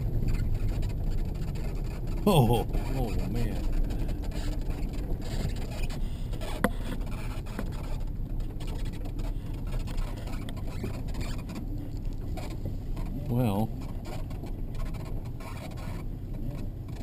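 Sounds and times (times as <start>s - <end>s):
vehicle engine and road rumble: 0.0s - 17.0s.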